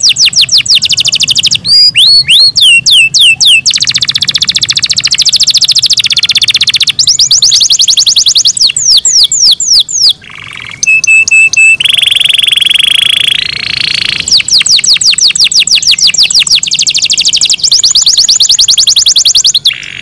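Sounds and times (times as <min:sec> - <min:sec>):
canary singing trills: 0:00.0 - 0:20.0.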